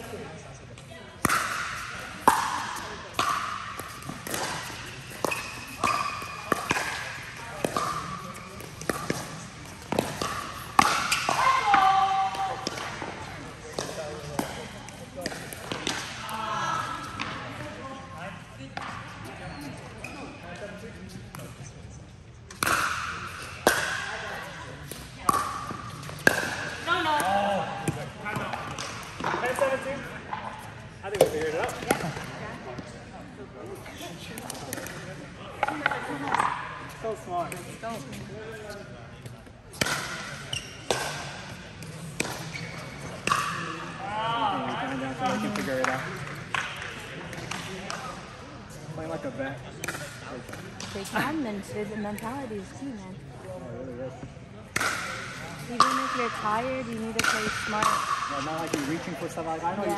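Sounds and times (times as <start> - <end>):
paddles hitting plastic ball: 1.2 - 13.1.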